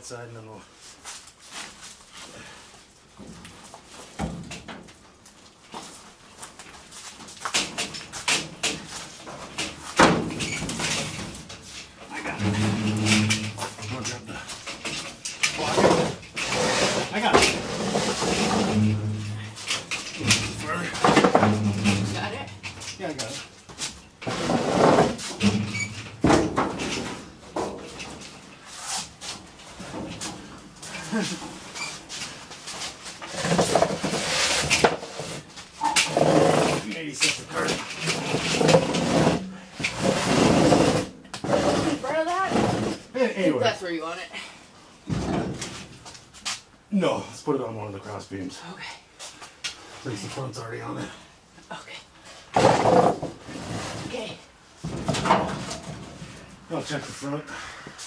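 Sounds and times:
metal clunks and bangs: 9.4 - 11.6, 17.2 - 22.9, 24.2 - 28.2, 45.0 - 46.0, 54.8 - 56.2
metal scraping: 10.3 - 23.4, 24.2 - 26.2.

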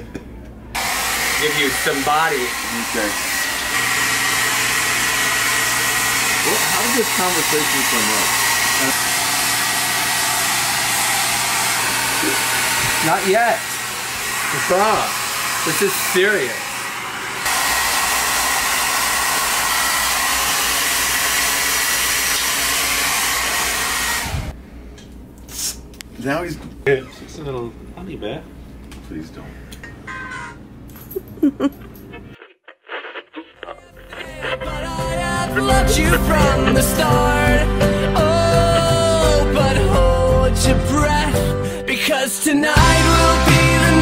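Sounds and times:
hair dryer running: 0.8 - 24.6, 34.8 - 40.4.

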